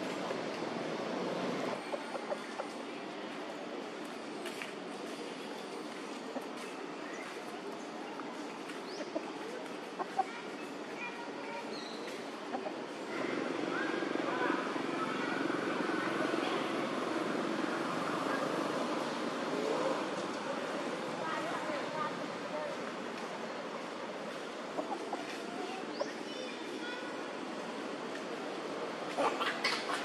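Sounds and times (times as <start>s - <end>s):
faint indistinct voices: 0.0s - 30.0s.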